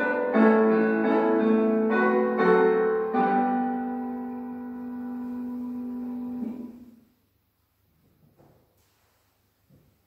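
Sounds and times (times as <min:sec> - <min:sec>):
keyboard music: 0:00.0 - 0:07.0.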